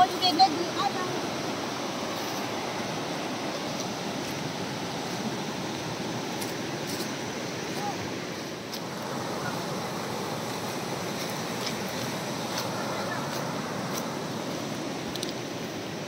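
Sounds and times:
river water rushing over rocks: 0.0 - 16.0.

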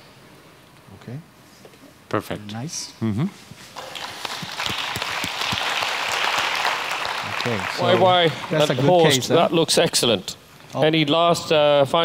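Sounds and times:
audience applauding: 3.8 - 9.3.

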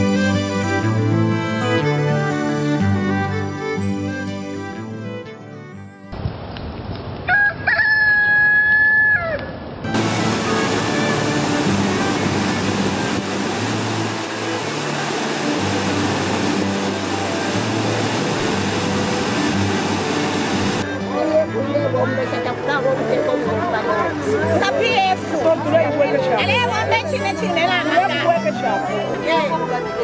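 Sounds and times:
rooster crowing: 7.3 - 9.5
waterfall roaring: 9.8 - 20.9.

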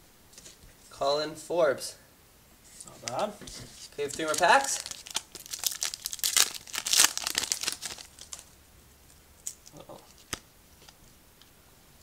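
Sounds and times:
foil wrapper tearing and crinkling: 3.8 - 8.6.

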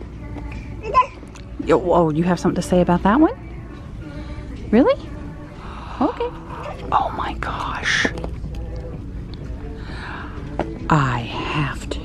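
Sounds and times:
baby babbling: 0.8 - 1.2.

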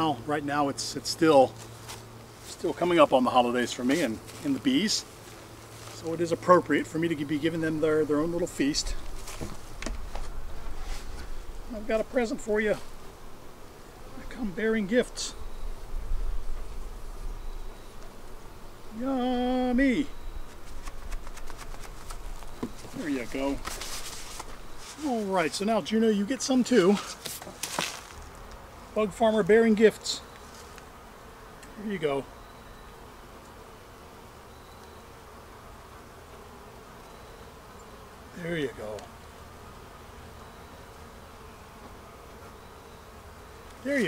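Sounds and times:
honeybees buzzing: 0.0 - 44.0.

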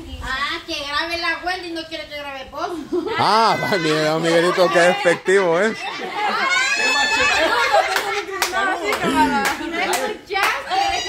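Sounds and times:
people laughing and talking: 2.5 - 11.0.

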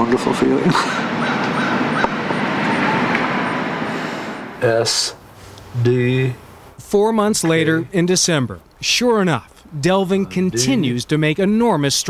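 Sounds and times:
passing traffic rushing: 0.0 - 6.8.

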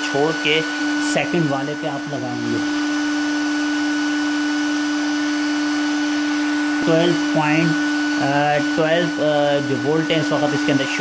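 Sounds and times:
cooling fan whining: 0.0 - 11.0.

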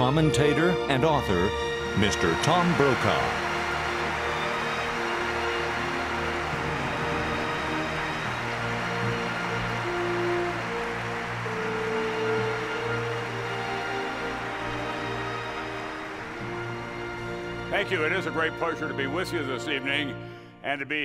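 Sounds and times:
orchestra playing sustained chords: 0.0 - 20.4
audience applause: 1.8 - 18.6.

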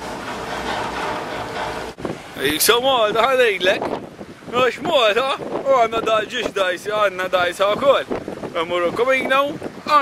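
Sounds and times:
ferry engines droning: 0.0 - 2.9.

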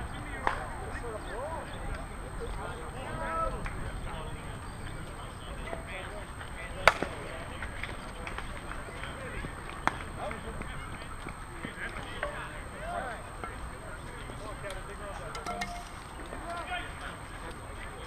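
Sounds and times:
scattered voices: 0.0 - 18.0
bat striking ball: 12.2 - 12.8.

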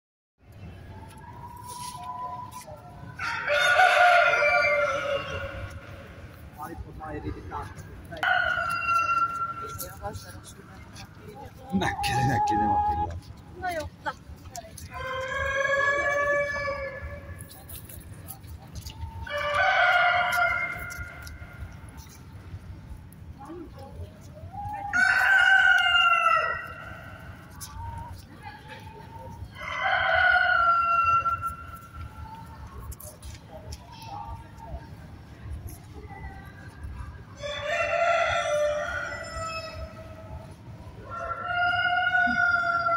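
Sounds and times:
rooster crowing: 41.0 - 42.9.

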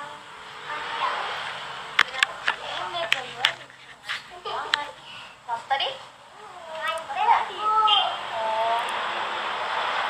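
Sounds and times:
girl's high-pitched voice: 5.8 - 8.8.

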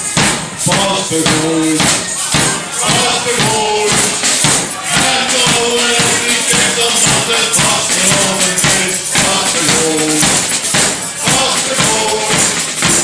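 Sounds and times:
bass drum beating: 0.0 - 13.0
brass band playing: 0.0 - 13.0
snare drum beating: 0.0 - 13.0
tambourine jingling: 0.0 - 13.0.

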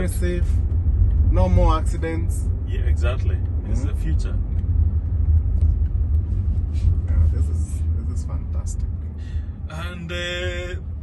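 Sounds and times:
road rumble inside car cabin: 0.0 - 11.0.

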